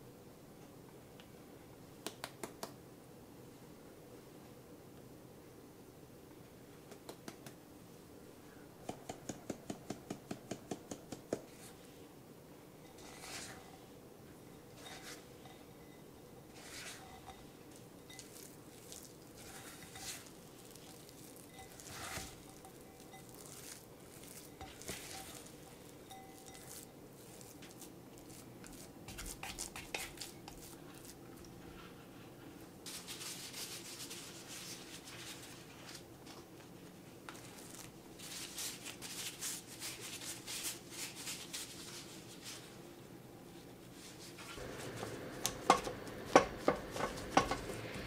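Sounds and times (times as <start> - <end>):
rustling and crinkling: 12.8 - 13.9, 16.5 - 48.0
spatula scraping dough in bowl: 12.9 - 13.8, 14.6 - 31.2.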